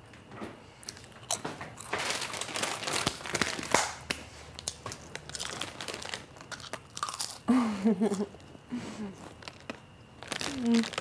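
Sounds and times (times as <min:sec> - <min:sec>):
plastic snack packet crinkling: 0:00.9 - 0:07.5, 0:09.2 - 0:11.0.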